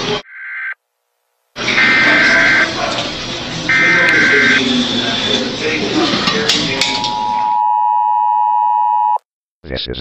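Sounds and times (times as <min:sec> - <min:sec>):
harsh two-tone alert signal: 0:01.7 - 0:02.9, 0:03.7 - 0:04.9, 0:06.9 - 0:09.2.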